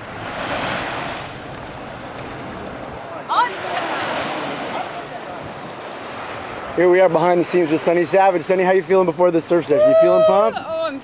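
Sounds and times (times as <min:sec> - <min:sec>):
wind buffeting microphone: 0:00.0 - 0:08.4
wind and surf rushing: 0:00.0 - 0:11.0.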